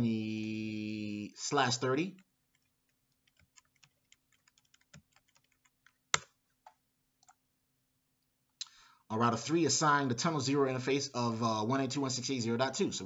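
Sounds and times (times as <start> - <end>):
keyboard typing: 2.2 - 7.4.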